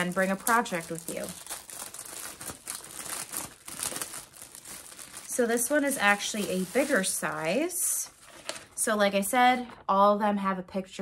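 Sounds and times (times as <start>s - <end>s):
plastic packaging crinkling: 0.0s - 8.8s.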